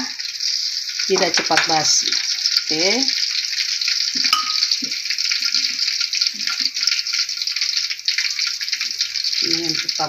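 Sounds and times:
onions sizzling in hot oil: 0.0 - 10.0.

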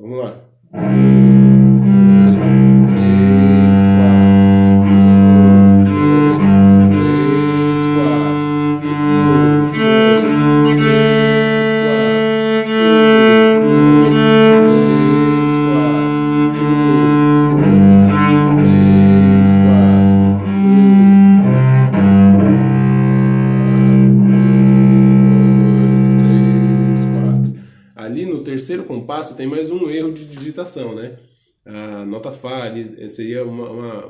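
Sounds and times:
cello bowed low notes: 0.7 - 27.8.

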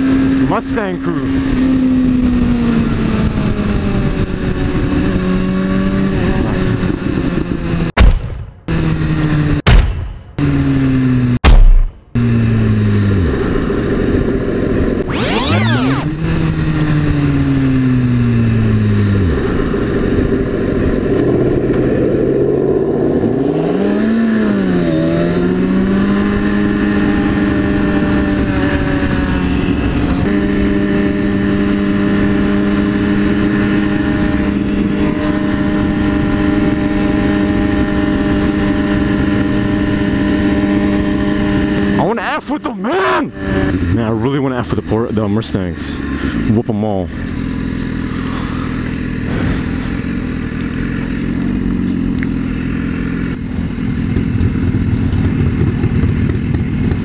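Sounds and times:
motorcycle engine: 0.0 - 57.0
rush of noise: 11.4 - 43.8, 47.9 - 57.0.

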